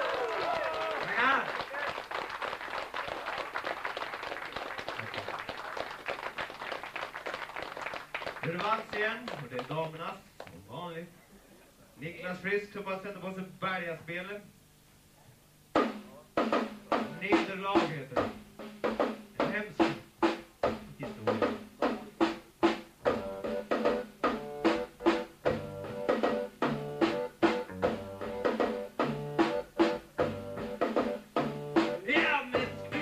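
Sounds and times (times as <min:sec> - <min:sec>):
drum kit beat: 0:15.6 - 0:33.0
accordion chords: 0:23.0 - 0:33.0
low bass notes: 0:27.6 - 0:28.5.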